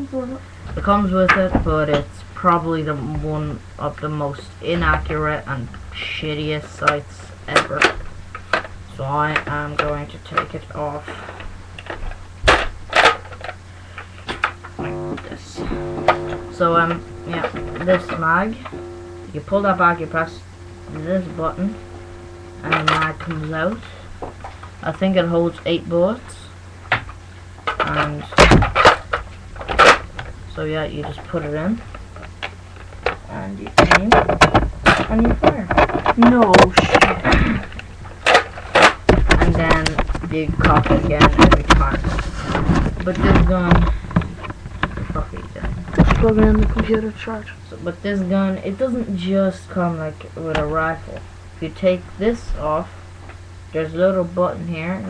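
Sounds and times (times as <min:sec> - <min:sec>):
priming slide rasping: 0:14.0 - 0:24.0.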